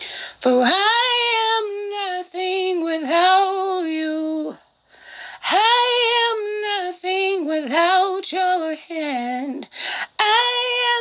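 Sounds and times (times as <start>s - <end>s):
woman singing unaccompanied: 0.0s - 4.7s, 5.3s - 11.0s.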